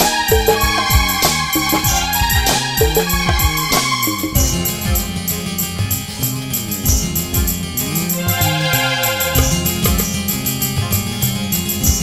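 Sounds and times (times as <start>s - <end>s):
electronic keyboard melody: 0.0s - 6.0s
drum kit beat with cymbals: 0.0s - 12.0s.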